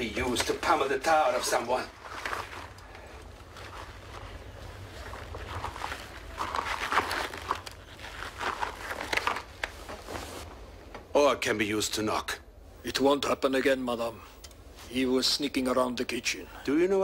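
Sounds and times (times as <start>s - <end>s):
latex mask crinkling and squishing: 0.0s - 10.5s.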